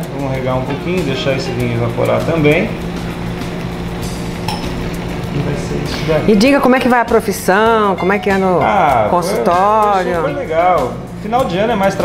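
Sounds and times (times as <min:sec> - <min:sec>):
food sizzling in a frying pan: 0:00.4 - 0:07.0.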